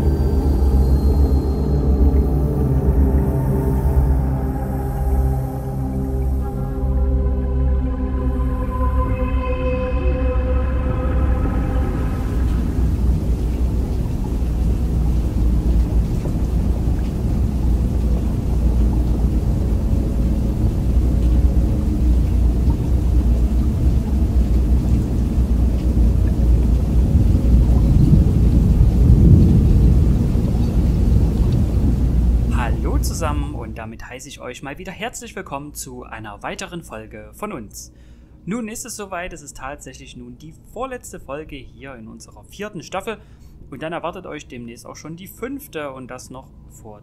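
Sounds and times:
music: 0.0 - 33.8
loud steady low rumble: 0.0 - 34.4.

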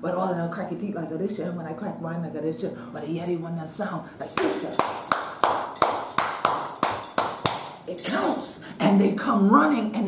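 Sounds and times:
hand claps: 4.3 - 7.9.

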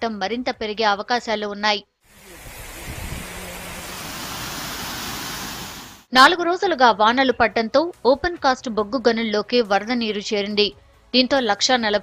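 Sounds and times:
floodwater rushing along stream: 2.1 - 6.1.

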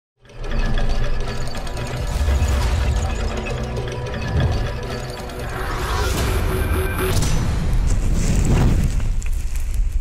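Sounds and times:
rapid mechanical gear clattering: 0.2 - 5.6.

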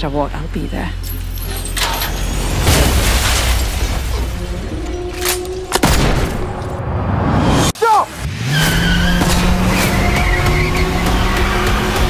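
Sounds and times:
music: 4.1 - 6.6, 9.4 - 12.0
car engine revving: 8.2 - 12.0.

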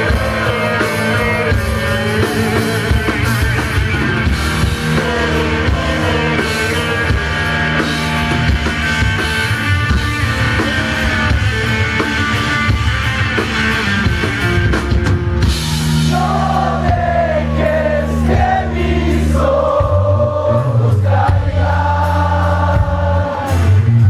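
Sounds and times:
drum kit: 0.0 - 24.0
electric guitars: 0.0 - 24.0.

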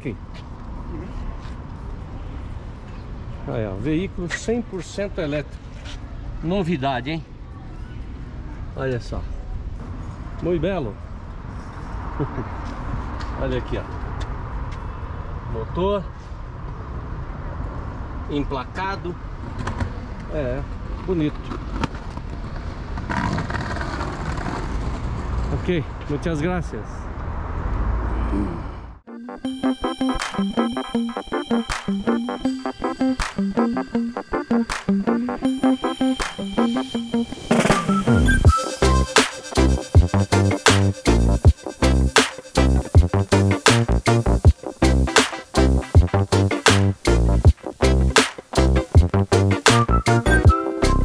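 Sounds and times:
traffic rumble: 0.0 - 29.1, 30.6 - 49.6
motor vehicle passing: 19.3 - 26.0, 26.8 - 29.0.

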